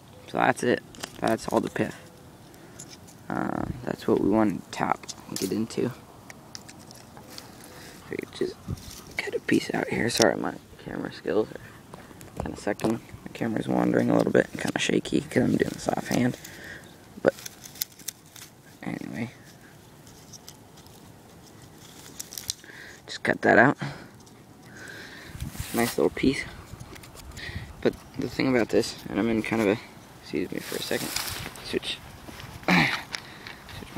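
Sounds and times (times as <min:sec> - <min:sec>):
dry grass rustling: 0:04.7 - 0:23.0, 0:24.1 - 0:33.9.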